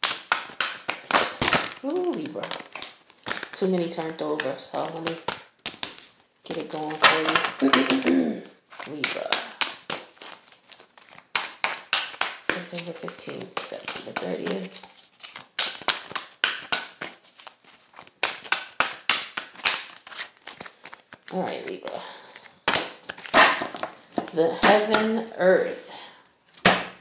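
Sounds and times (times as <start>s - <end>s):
sharp card snaps: 0.0s - 8.2s, 8.8s - 17.2s, 18.2s - 21.4s, 22.3s - 25.3s
playing cards rustling and slapping: 0.0s - 25.9s, 26.5s - 27.0s.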